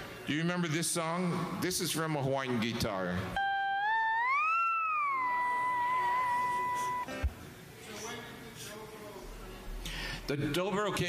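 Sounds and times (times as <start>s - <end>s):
lap steel guitar glissando: 3.4s - 7.3s.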